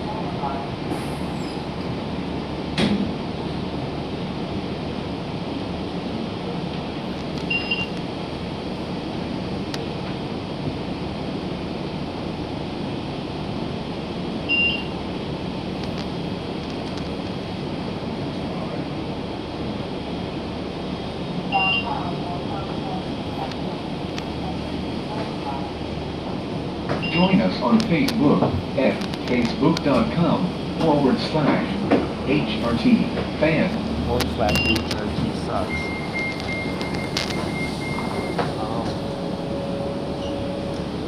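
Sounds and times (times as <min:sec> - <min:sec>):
bus engine and road noise: 0:00.0 - 0:41.0.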